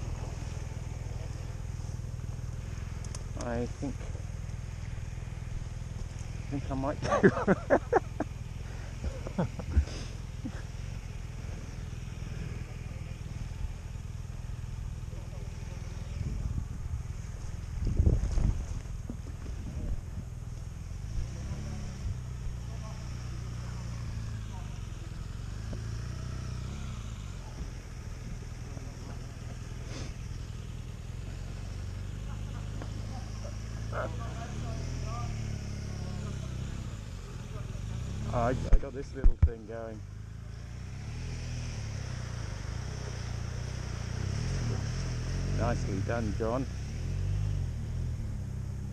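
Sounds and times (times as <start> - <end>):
motorcycle engine idling: 0.0 - 48.9.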